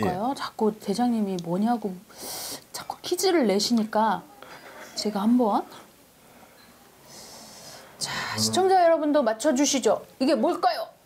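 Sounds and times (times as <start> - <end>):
person breathing through nose: 7.1 - 8.4.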